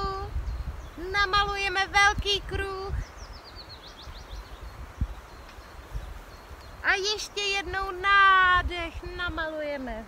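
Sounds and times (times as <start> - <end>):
faint outdoor hush: 0.0 - 10.0
songbird singing: 0.0 - 10.0.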